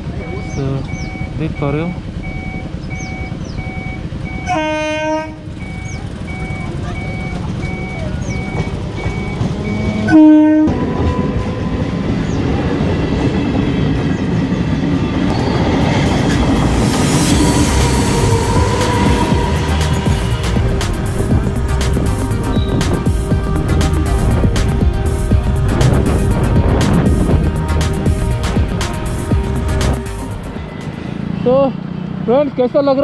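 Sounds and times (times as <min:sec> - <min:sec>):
train rumbling and clattering past: 0:00.0 - 0:33.0
train horn: 0:04.4 - 0:05.6, 0:09.4 - 0:12.1, 0:16.2 - 0:23.0.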